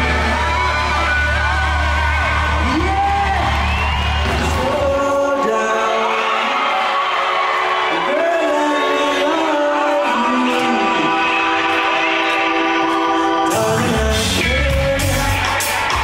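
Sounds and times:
reggae band playing live: 0.0s - 5.7s, 7.8s - 16.0s
person singing long notes: 7.9s - 16.0s.

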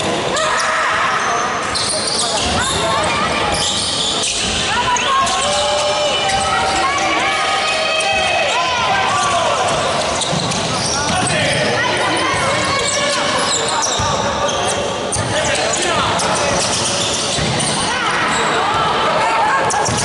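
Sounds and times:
voices calling out in gym: 0.0s - 20.0s.

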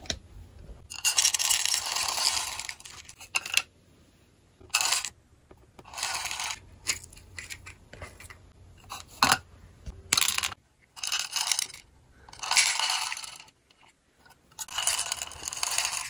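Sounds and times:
beads rattling into plastic organizer: 10.1s - 13.5s, 14.6s - 16.0s.

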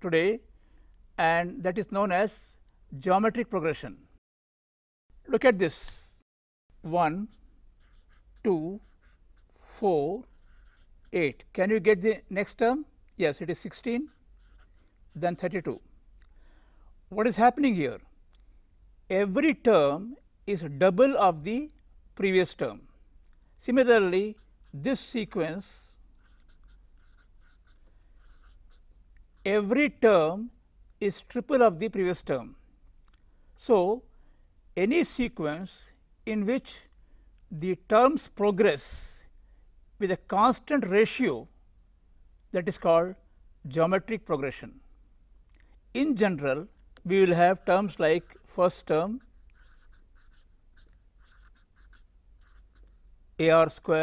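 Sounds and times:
marker scratching on paper: 7.2s - 12.6s, 13.3s - 15.9s, 23.8s - 29.8s, 47.2s - 53.0s.

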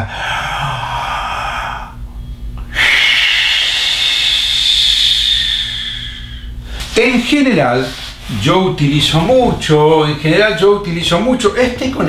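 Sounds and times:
man breathing deeply: 0.0s - 7.0s.

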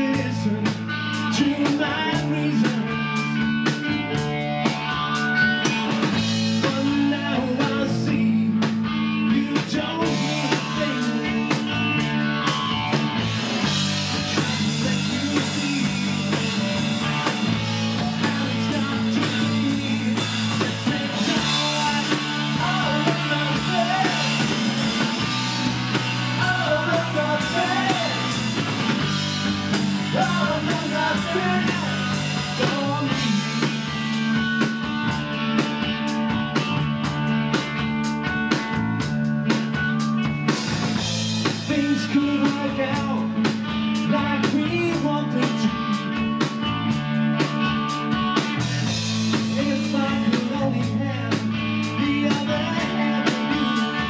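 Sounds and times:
bass guitar: 0.0s - 54.0s
drum kit: 0.0s - 54.0s
electric guitars: 0.0s - 54.0s
male lead singer: 0.0s - 54.0s.

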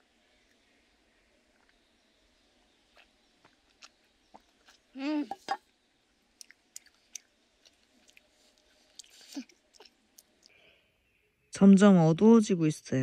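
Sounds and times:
person humming: 5.0s - 5.5s.

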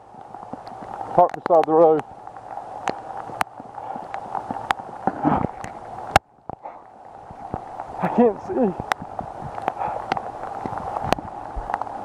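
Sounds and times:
footsteps on wet path: 0.0s - 12.0s
rain hissing: 0.0s - 12.0s.

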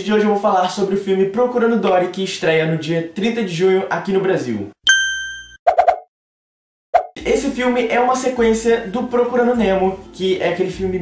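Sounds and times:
bright bell-like ding: 4.9s - 5.6s.

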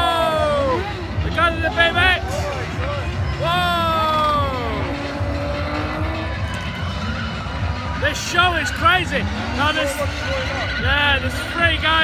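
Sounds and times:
car engine revving: 0.0s - 12.0s
car tyres squealing: 0.0s - 12.0s.

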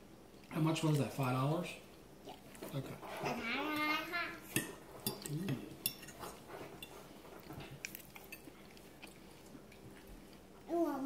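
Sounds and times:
fork clinking on plate: 4.5s - 7.0s.

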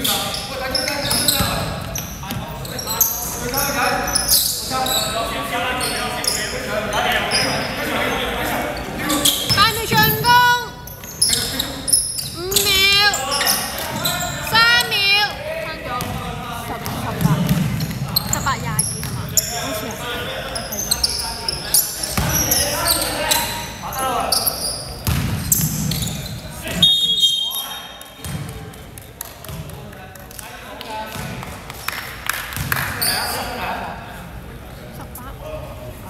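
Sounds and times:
sneakers squeaking on hardwood: 0.0s - 7.8s, 9.1s - 27.4s
players calling out: 8.5s - 24.8s
basketball bouncing: 16.0s - 19.3s, 25.0s - 25.7s.

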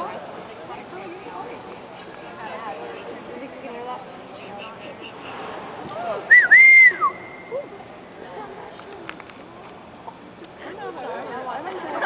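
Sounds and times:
person whistling loudly: 6.3s - 7.4s.

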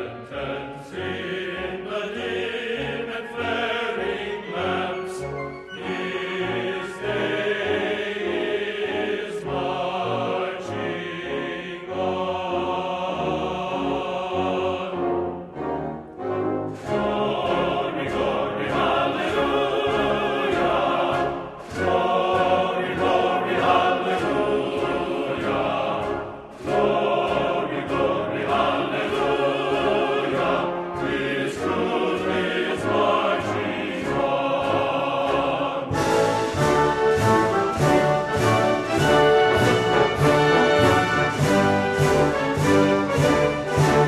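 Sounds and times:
choir singing with orchestra: 0.0s - 44.0s.

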